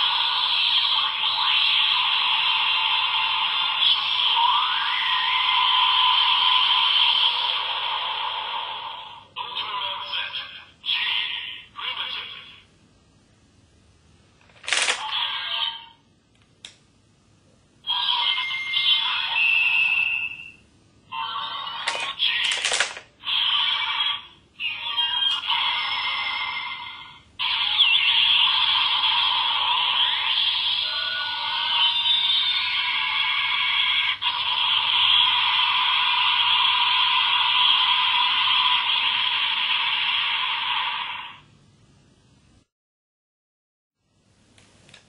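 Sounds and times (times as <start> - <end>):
tinny toy sound effects and music: 0.0 - 12.7, 14.4 - 16.0, 17.8 - 41.5.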